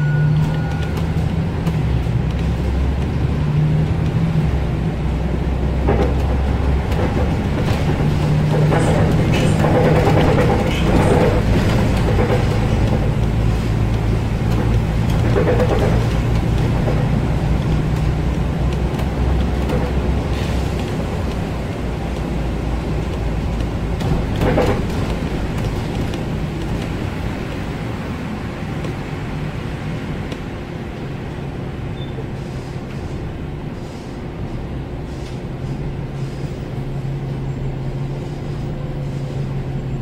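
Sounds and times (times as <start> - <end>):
tyre noise on wet road: 0.0 - 33.2
diesel engine drone: 0.0 - 40.0.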